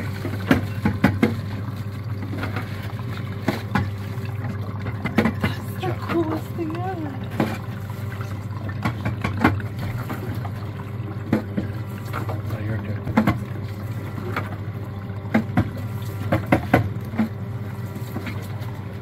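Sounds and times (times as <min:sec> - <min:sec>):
juicer motor hum: 0:00.0 - 0:19.0.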